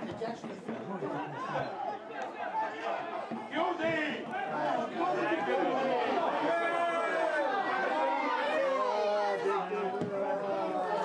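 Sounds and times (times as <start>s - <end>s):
spectators chattering and calling: 0.0s - 11.0s.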